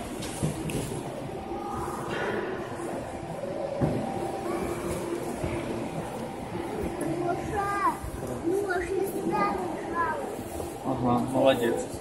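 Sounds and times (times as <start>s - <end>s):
large hall background noise: 0.0s - 12.0s.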